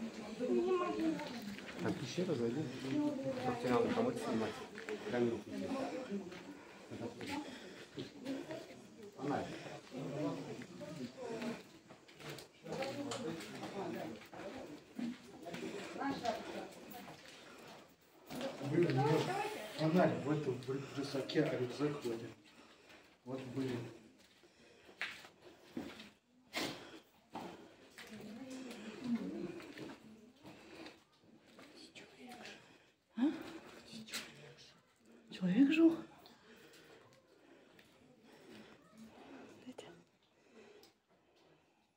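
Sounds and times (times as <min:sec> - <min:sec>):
quiet indistinct talking: 0:00.0 - 0:24.1.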